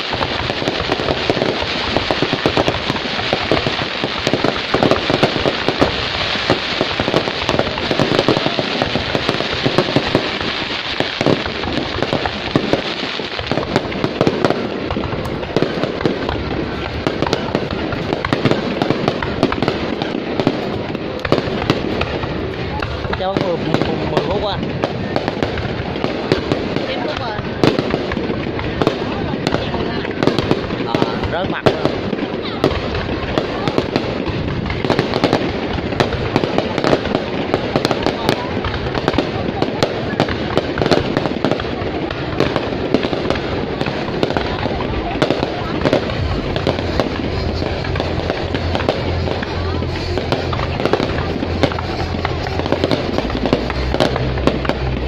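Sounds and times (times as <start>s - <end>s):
fireworks crackling and popping: 0.0s - 55.0s.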